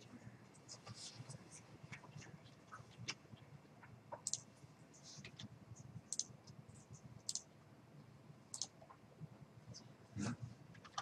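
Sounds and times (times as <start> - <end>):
faint computer mouse clicks: 4.2 - 4.4, 8.6 - 8.8.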